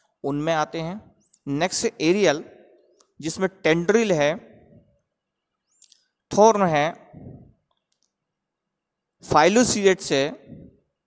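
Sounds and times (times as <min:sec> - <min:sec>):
person speaking: 0:00.1 - 0:05.2, 0:05.8 - 0:08.2, 0:09.2 - 0:10.9.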